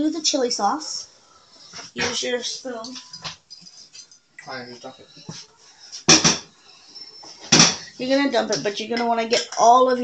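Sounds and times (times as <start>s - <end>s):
cookware clattering: 6.1s - 9.8s.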